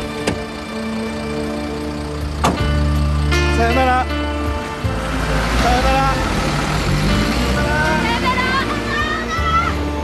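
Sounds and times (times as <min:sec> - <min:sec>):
truck engine humming: 0:00.0 - 0:10.0
voices calling goodbyes: 0:03.2 - 0:10.0.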